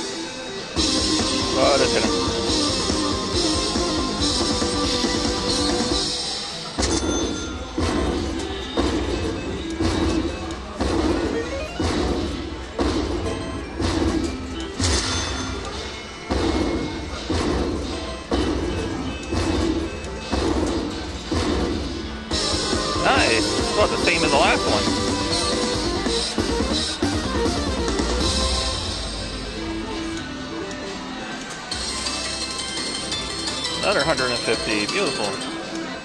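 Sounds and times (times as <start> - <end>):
slot machine win music: 0.0 - 36.0
loud hits: 6.8 - 24.2.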